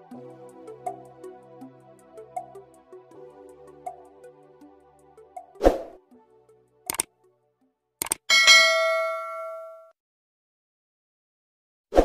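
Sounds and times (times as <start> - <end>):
button clicks: 6.9 - 7.1, 8.0 - 8.3
notification bell ding: 8.3 - 9.9.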